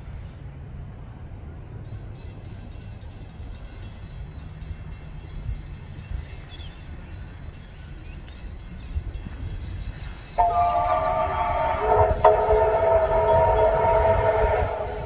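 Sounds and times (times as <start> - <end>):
distant steam locomotive rumble: 0.0 - 15.0.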